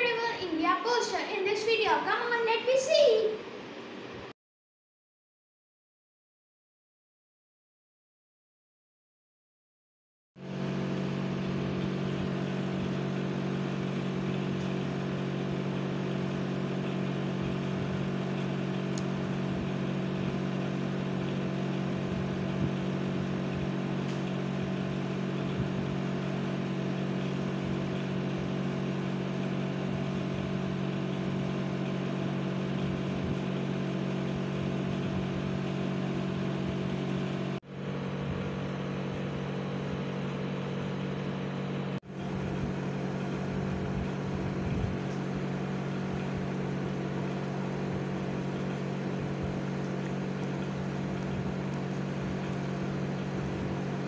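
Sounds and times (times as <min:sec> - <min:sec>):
steady mechanical hum: 0:00.0 - 0:04.3, 0:10.4 - 0:54.0.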